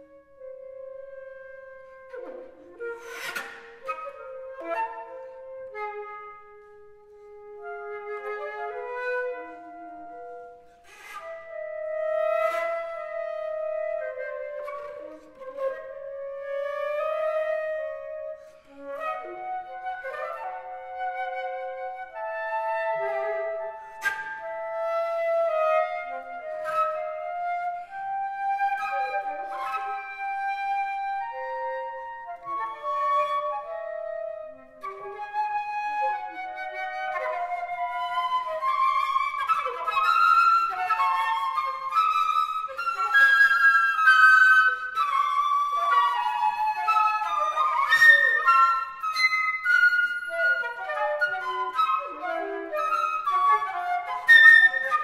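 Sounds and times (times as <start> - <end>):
two flutes playing duet: 0.0 - 55.0.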